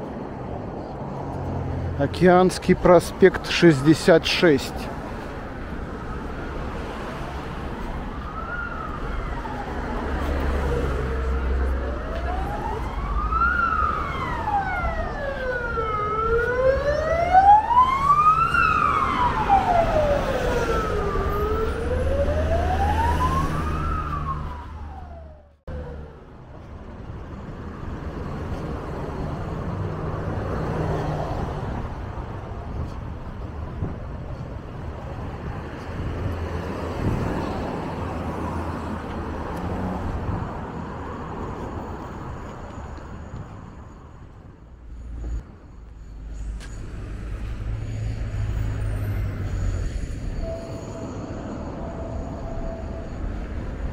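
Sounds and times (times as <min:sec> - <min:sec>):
street traffic: 0:00.0 - 0:53.9
siren wailing: 0:03.3 - 0:26.2, 0:47.9 - 0:53.9.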